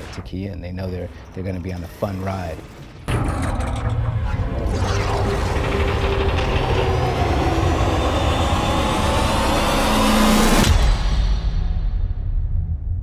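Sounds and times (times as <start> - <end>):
deep rumble: 3.1 - 13.0
noisy swell with climbing whines: 4.4 - 10.7.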